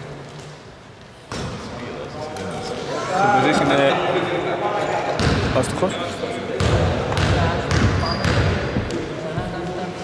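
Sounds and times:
ball bouncing on hardwood court: 5.2s - 5.6s, 6.6s - 9.1s.

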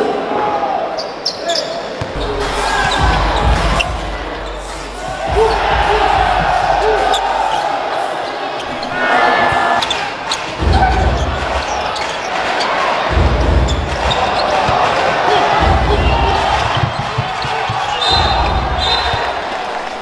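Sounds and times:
arena crowd noise: 0.0s - 20.0s
sneakers squeaking: 1.0s - 20.0s
basketball dribbling: 2.0s - 4.2s, 5.0s - 7.3s, 13.1s - 19.3s
heavy low thumps: 2.2s - 7.4s, 13.1s - 14.3s, 15.6s - 17.0s.

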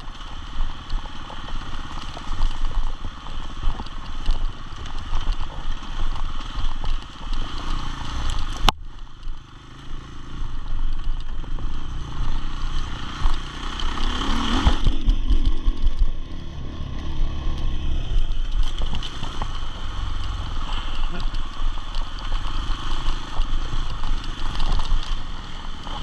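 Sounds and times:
motorcycle engine revving: 0.0s - 26.0s
motorcycle rattling over ground: 0.0s - 26.0s.

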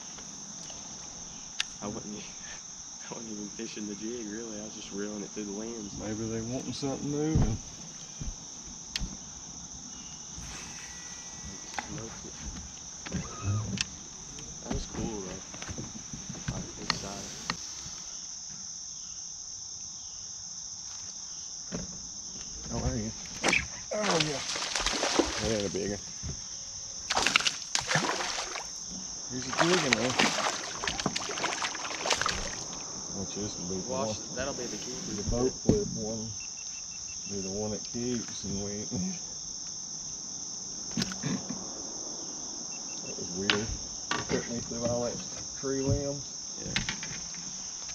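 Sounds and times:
insect chorus chirring: 0.0s - 47.9s
voices: 1.6s - 7.6s, 10.4s - 18.0s, 22.6s - 26.1s, 29.0s - 36.4s, 37.2s - 39.3s, 43.0s - 46.9s.

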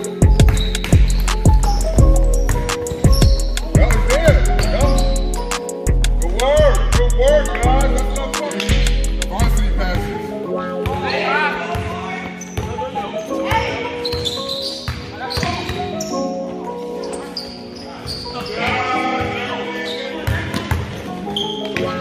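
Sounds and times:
background music with vocals: 0.0s - 14.2s
basketball bouncing on hardwood floor: 0.2s - 1.6s, 2.4s - 4.7s.

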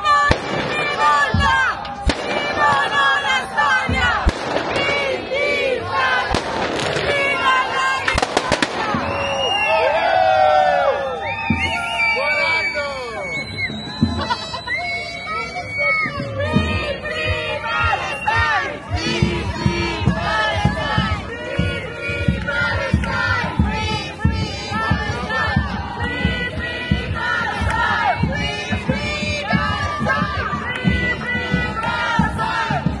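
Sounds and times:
crowd shouting: 0.0s - 33.0s
fireworks bangs and cracks: 0.2s - 5.4s, 6.3s - 9.4s.

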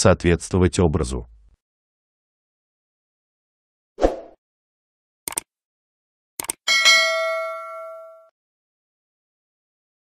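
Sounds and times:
notification bell ding: 6.7s - 8.3s.

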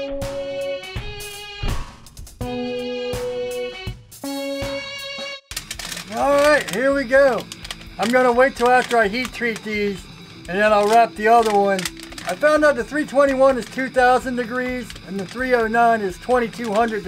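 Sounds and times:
background music with held chords: 0.0s - 17.0s
man speaking: 6.1s - 17.0s.

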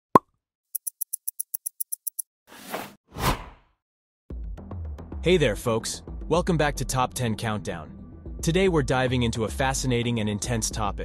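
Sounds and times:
stopwatch ticks: 0.8s - 2.2s.

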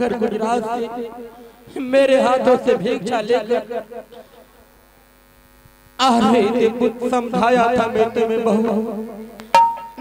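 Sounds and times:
electrical hum from speakers: 0.0s - 10.0s.

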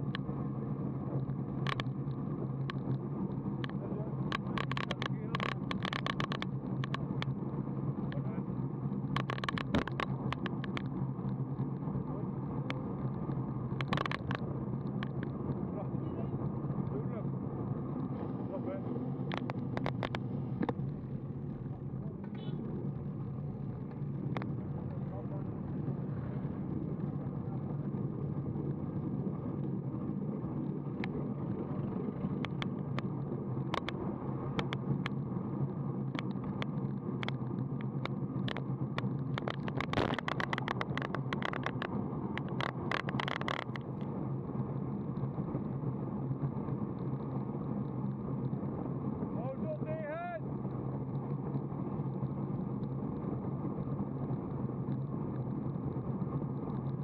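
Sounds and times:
bike tyre noise on road: 0.0s - 57.0s
sharp clicks and knocks: 1.2s - 7.4s, 9.0s - 11.8s, 12.6s - 15.6s, 19.2s - 21.1s, 23.8s - 25.1s, 30.9s - 35.3s, 36.1s - 44.1s.

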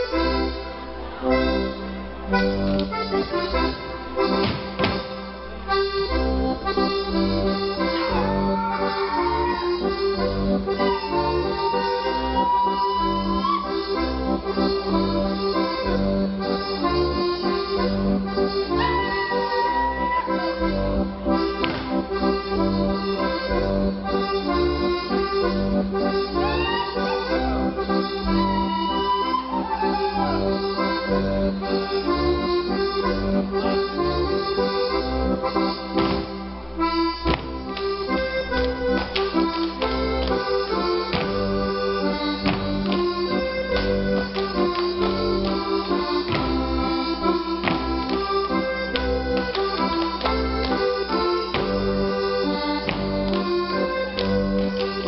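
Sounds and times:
accordion folk dance tune: 0.0s - 55.0s
sharp slaps: 4.3s - 5.2s, 21.6s - 22.0s, 35.9s - 36.5s, 37.2s - 37.9s, 41.1s - 41.6s, 42.4s - 43.1s, 47.6s - 48.2s.

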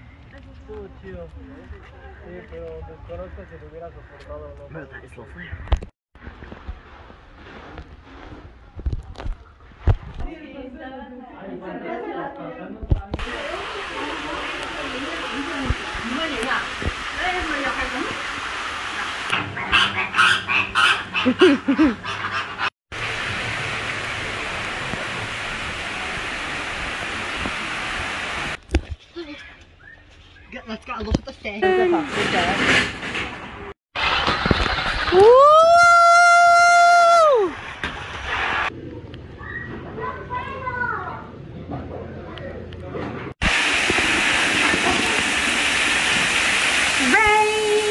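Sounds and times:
waterfall pouring over rocks: 13.2s - 19.4s, 23.0s - 28.6s, 43.4s - 47.9s
loud rushing hiss: 43.4s - 47.9s.

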